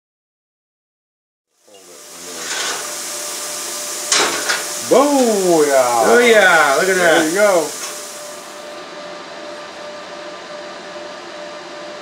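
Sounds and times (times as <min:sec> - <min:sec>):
plasma cutter hissing: 0:01.6 - 0:08.8
man talking: 0:04.8 - 0:07.8.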